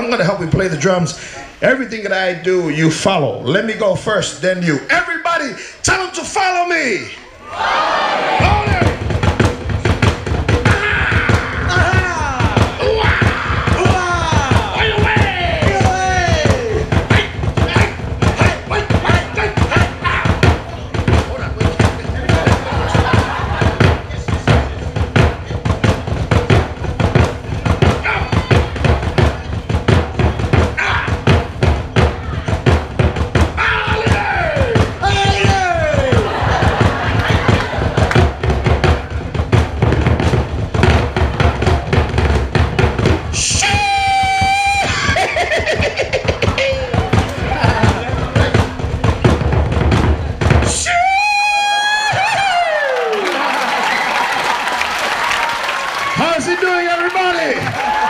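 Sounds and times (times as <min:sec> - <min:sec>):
shouted calls: 0:07.4 - 0:09.1, 0:10.6 - 0:21.2, 0:27.8 - 0:29.5, 0:30.4 - 0:31.4, 0:33.6 - 0:38.3
fast wooden drumming with sticks: 0:07.6 - 0:58.0.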